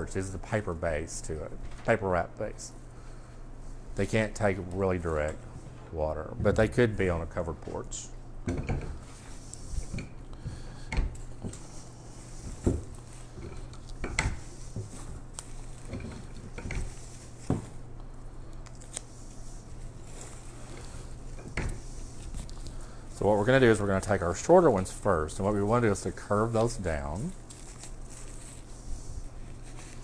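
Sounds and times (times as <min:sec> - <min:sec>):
steady low hum: 0:00.0 - 0:30.0
plant stems rustling: 0:11.2 - 0:30.0.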